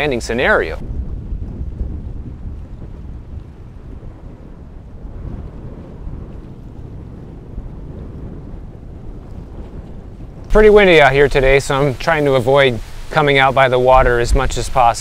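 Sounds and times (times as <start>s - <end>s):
wind buffeting microphone: 0.0s - 15.0s
small waves washing: 9.4s - 15.0s.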